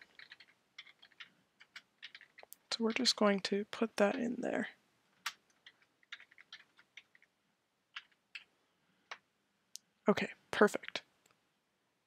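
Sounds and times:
faint keyboard typing: 0.0 - 9.3.

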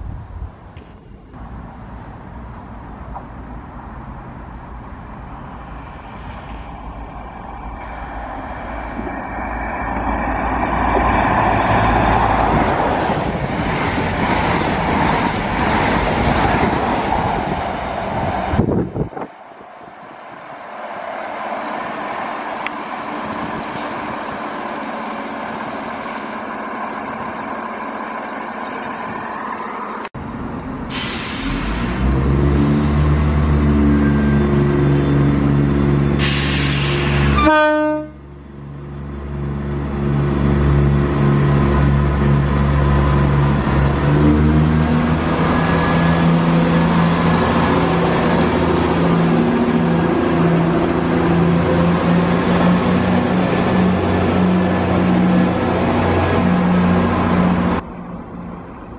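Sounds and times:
diesel train engine drone: 0.0 - 58.9
rumble of moving trains: 0.0 - 58.9.

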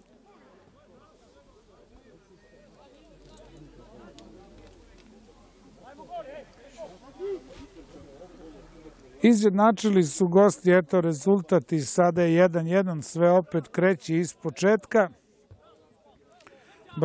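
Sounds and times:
footballers shouting and calling: 0.1 - 17.0.

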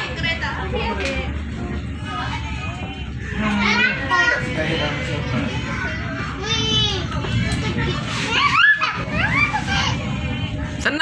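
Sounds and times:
children chattering and calling: 0.0 - 11.0
train rumbling: 0.0 - 11.0.

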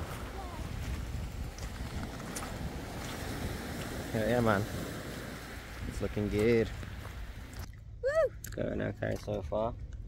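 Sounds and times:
small waves breaking on shingle: 0.0 - 7.7
wind buffeting microphone: 0.0 - 7.7.

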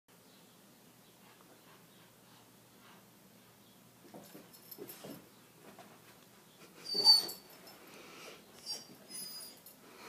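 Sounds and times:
dog high-pitched yelp: 6.8 - 7.4.

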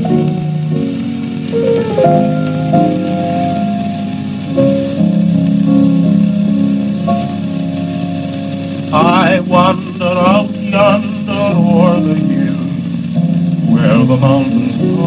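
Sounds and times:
solo piano on old record: 0.0 - 15.0.

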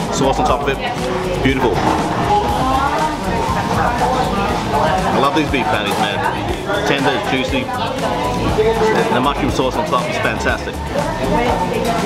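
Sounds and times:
background guitar music: 0.0 - 12.0
chatter of people: 0.0 - 12.0.

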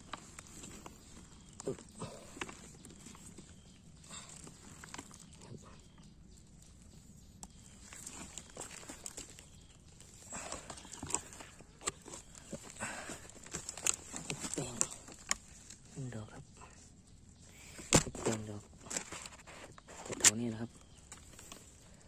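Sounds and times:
rustling of dry leaf litter: 0.0 - 16.4, 17.4 - 22.0.

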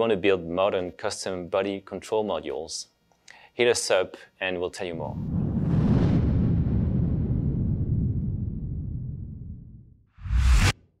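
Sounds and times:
low rumble: 5.1 - 10.7.

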